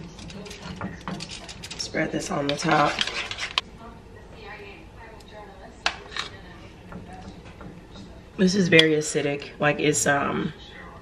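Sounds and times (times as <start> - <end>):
spoon scraping ceramic bowl: 0.0 - 3.6.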